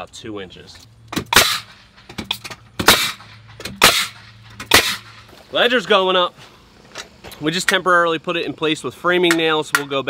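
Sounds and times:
nail gun shots into wood: 1.1 - 5.2.

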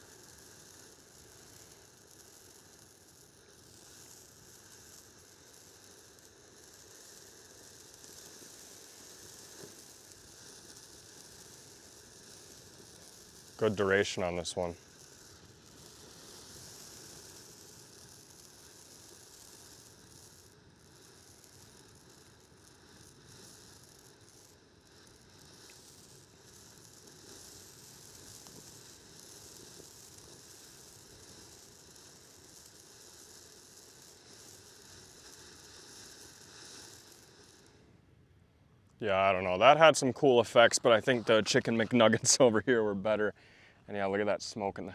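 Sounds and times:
firework fountain hissing: 0.0 - 44.9.

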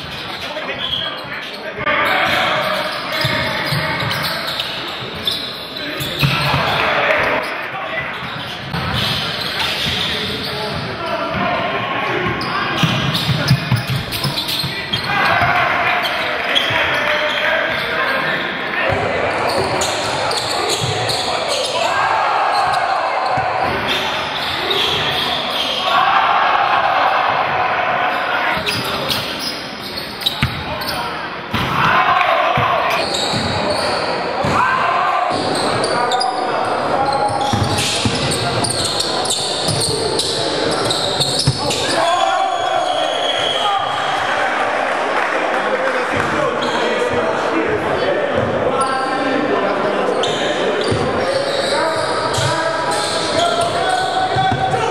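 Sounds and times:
voices echoing in hall: 0.0 - 54.9.

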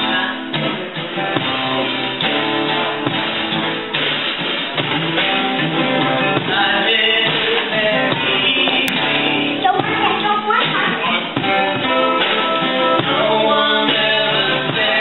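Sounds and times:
guitar and drum kit playing: 0.0 - 15.0.

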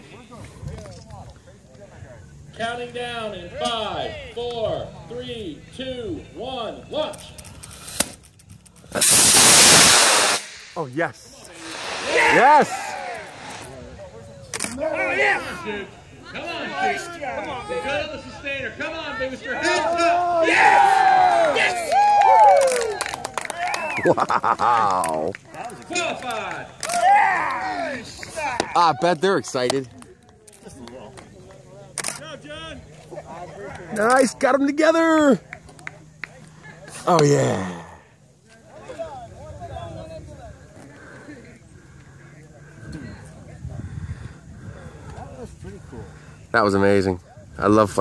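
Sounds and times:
rocket motor rushing hiss: 8.9 - 14.0
people talking: 10.8 - 21.9, 23.0 - 48.0.

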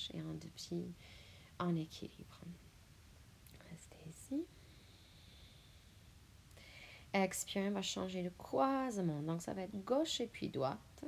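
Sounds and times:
woman whispering and breathing: 3.5 - 5.5.

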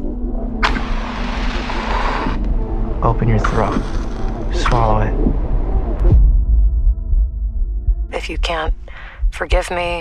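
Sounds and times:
low steady drone: 0.0 - 10.0.

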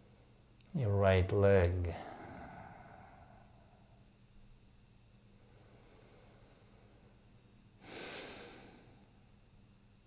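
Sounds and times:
person breathing: 1.8 - 4.1, 5.4 - 7.2, 7.8 - 9.2.

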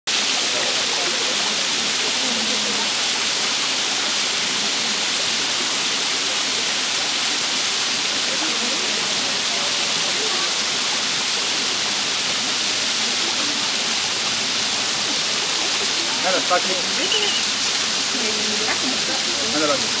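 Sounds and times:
waterfall splashing on rock: 0.1 - 20.0.

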